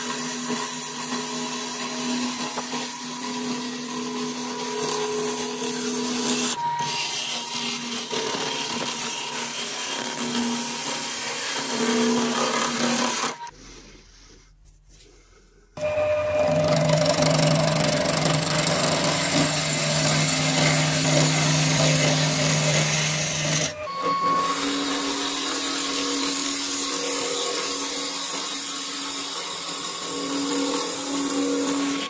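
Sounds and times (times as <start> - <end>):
gouge cutting spinning wood: 0.0 - 13.5, 15.8 - 32.0
wood lathe humming: 0.0 - 13.5, 15.8 - 32.0.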